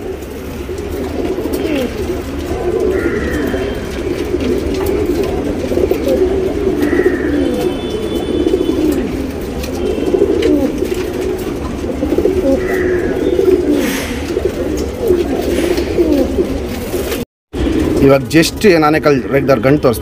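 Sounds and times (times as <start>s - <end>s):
pigeons cooing: 0.0s - 19.5s.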